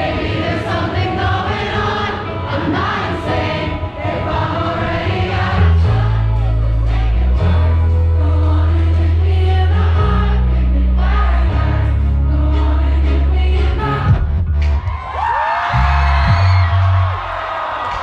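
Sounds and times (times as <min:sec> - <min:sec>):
live pop song with singing: 0:00.0 - 0:17.0
audience cheering and whooping: 0:14.6 - 0:18.0.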